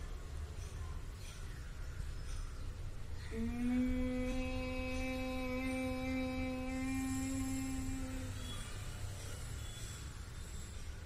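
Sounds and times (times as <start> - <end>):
boy humming: 3.3 - 8.7.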